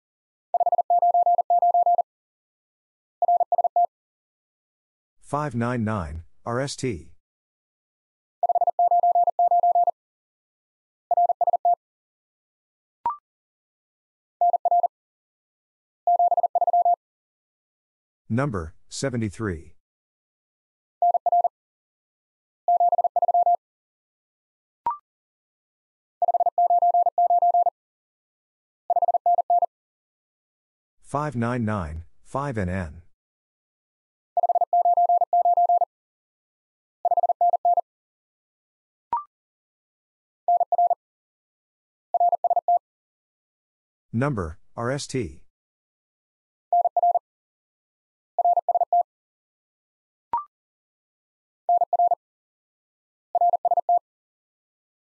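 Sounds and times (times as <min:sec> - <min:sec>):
morse code beeps: 0:00.6 - 0:02.0, 0:03.2 - 0:03.9, 0:08.4 - 0:09.9, 0:16.1 - 0:17.0, 0:22.7 - 0:23.6, 0:26.2 - 0:27.7, 0:28.9 - 0:29.7, 0:34.4 - 0:35.9, 0:37.1 - 0:37.8, 0:40.5 - 0:41.0, 0:42.2 - 0:42.8, 0:46.8 - 0:47.2, 0:48.4 - 0:49.0
morse code tone: 0:00.6 - 0:02.0.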